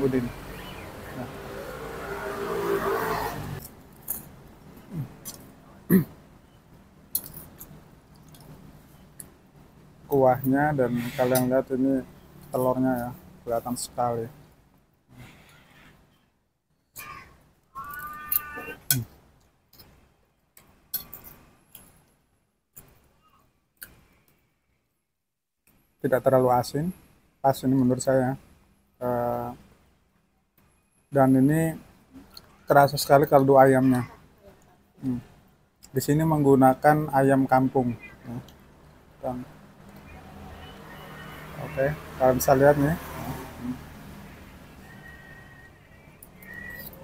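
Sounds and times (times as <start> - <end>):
motor vehicle passing: 0.0 - 5.6, 38.2 - 47.0
voices: 17.0 - 19.1, 31.2 - 35.3, 35.9 - 43.8, 44.4 - 47.0.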